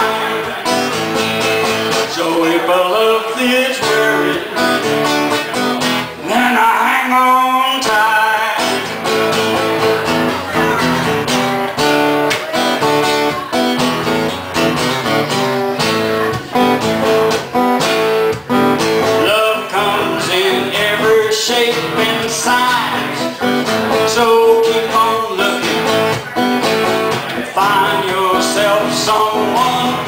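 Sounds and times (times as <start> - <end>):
acoustic guitars playing: 0.0 - 30.0.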